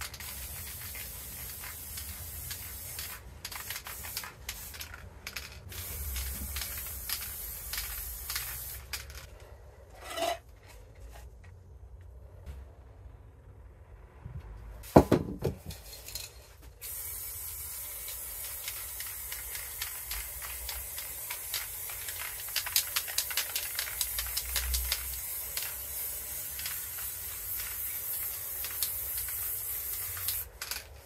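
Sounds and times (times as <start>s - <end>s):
spray can hissing: 0.0s - 9.3s, 16.8s - 31.0s.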